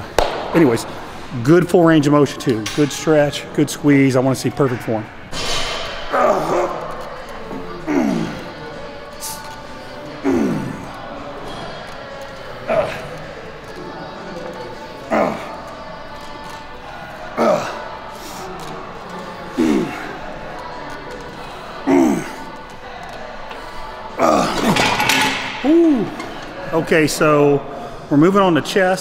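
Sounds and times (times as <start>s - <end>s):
background music: 0.0s - 29.0s.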